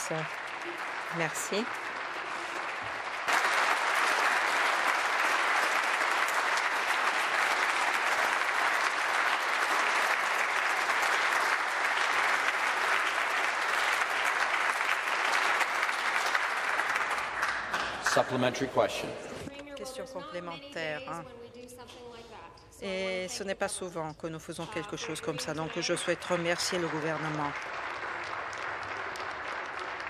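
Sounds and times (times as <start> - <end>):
crowd clapping: 0.0 - 19.4, 24.6 - 30.0.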